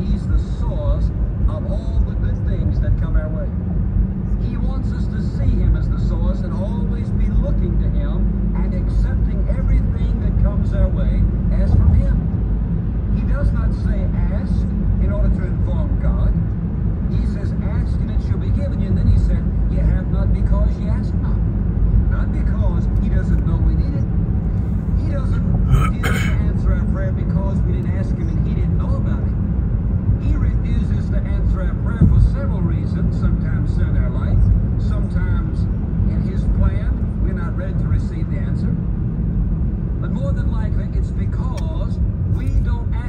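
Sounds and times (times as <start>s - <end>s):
car road and engine noise: 0.0s - 43.0s
faint talk: 25.3s - 26.4s.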